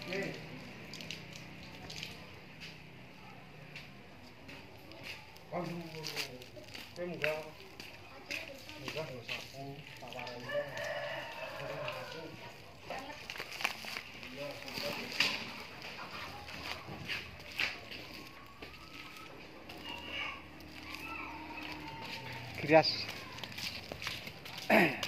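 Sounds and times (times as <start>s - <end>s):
faint voices: 0.0s - 25.0s
rooster crowing: 10.4s - 12.4s, 19.8s - 22.6s.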